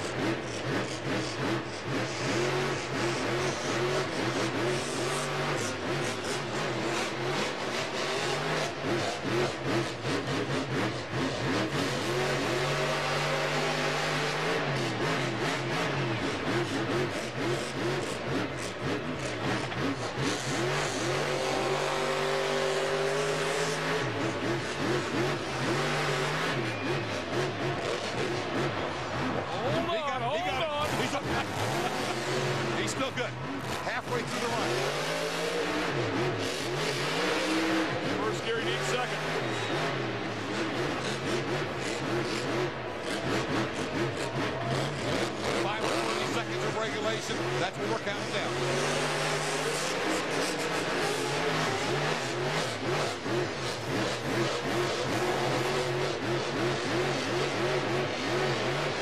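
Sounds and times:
monster truck engine revving: 0.0s - 59.0s.

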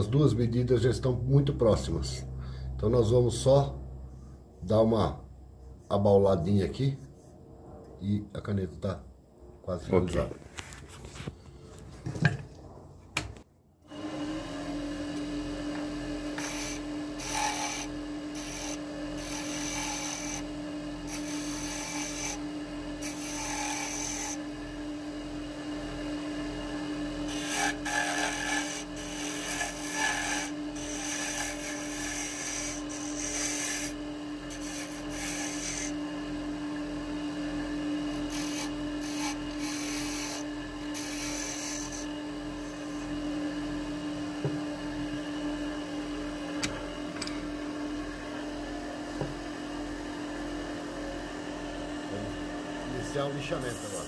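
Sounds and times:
wood lathe motor humming: 13.9s - 44.6s
turning tool scraping wood: 16.4s - 24.4s, 27.2s - 36.0s, 38.1s - 43.2s.

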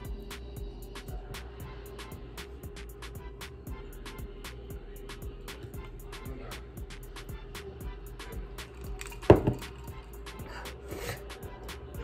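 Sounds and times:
background music with ticking beat: 0.0s - 12.0s.

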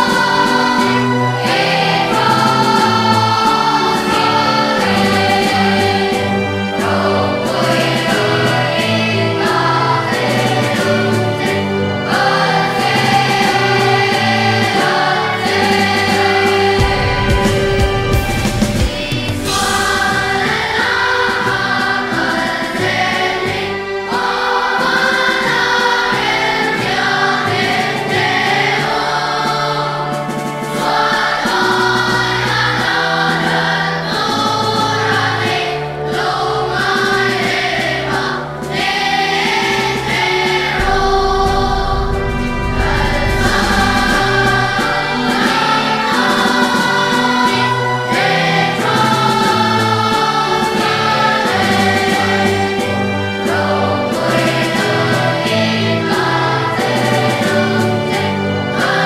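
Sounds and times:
children's choir singing: 0.0s - 59.0s
instrumental accompaniment: 0.0s - 59.0s.

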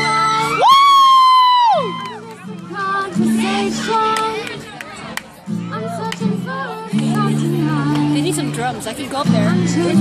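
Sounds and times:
person whooping: 0.5s - 2.2s.

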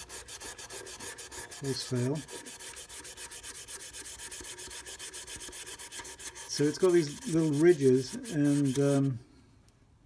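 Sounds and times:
scratchy rubbing strokes on wood: 0.0s - 9.2s.

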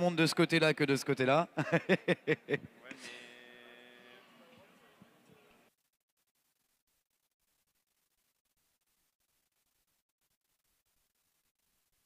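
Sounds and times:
man laughing: 1.6s - 3.2s.

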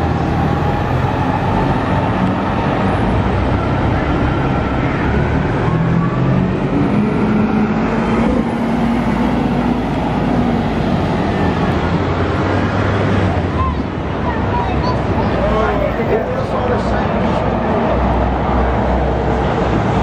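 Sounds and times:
bus engine hum: 0.0s - 20.0s
rising engine whine: 0.0s - 20.0s
street traffic: 0.0s - 20.0s.

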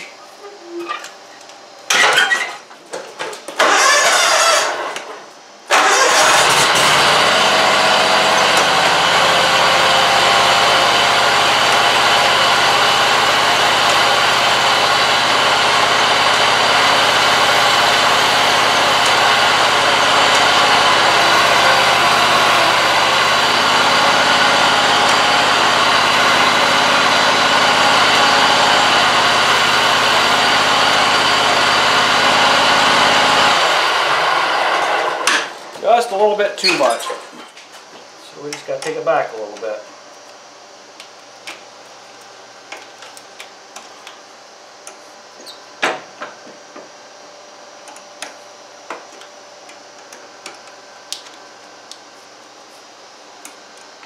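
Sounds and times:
mower engine cranking and running: 3.6s - 5.1s, 5.7s - 35.5s.

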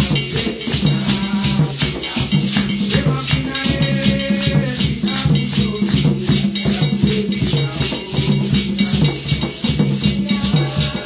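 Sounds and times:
hand drums: 0.0s - 11.0s
shaker rattle: 0.0s - 11.0s.

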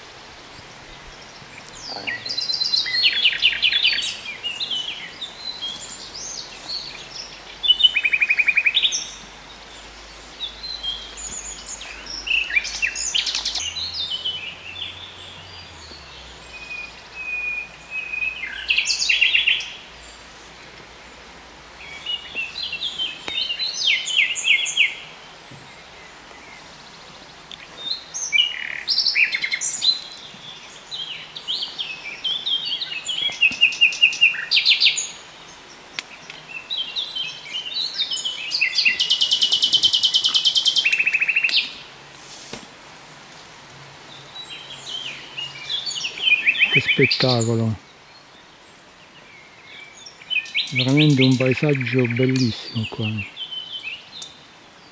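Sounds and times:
songbird singing: 0.0s - 54.9s.

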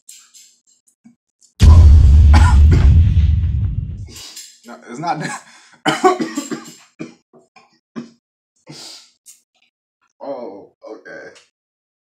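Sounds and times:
man coughing hard: 2.3s - 2.7s, 5.2s - 7.2s.

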